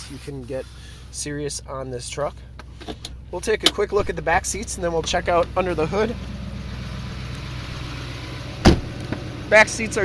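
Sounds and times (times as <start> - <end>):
diesel engine idling: 0.0 - 10.0
truck door thump: 8.6 - 9.3.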